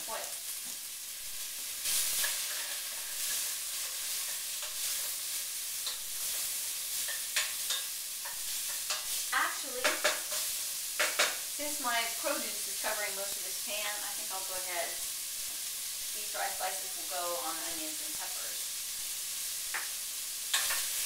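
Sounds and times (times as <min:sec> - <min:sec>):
vegetables sizzling in a pan: 0:00.0 - 0:21.0
utensil scraping a pan: 0:01.8 - 0:11.4.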